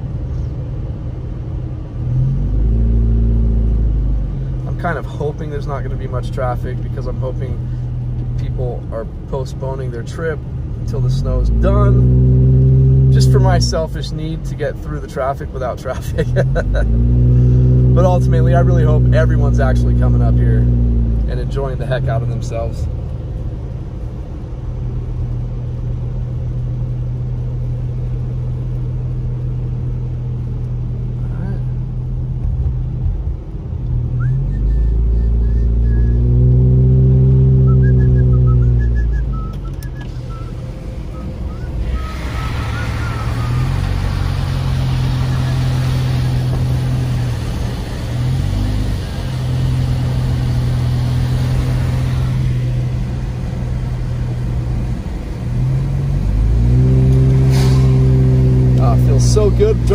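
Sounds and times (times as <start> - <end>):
car engine inside cabin: 0.0 - 59.9
tyres on wet road: 0.0 - 59.9
wind and road noise through window: 0.0 - 59.9.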